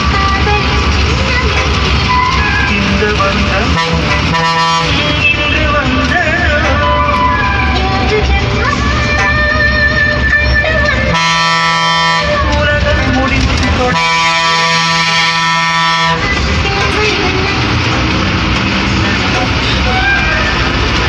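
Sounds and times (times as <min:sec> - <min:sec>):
bus engine: 0:00.0 - 0:21.0
road noise: 0:00.0 - 0:21.0
bus horn blasts: 0:02.0 - 0:07.9, 0:11.0 - 0:12.8, 0:13.8 - 0:17.6, 0:19.3 - 0:20.7.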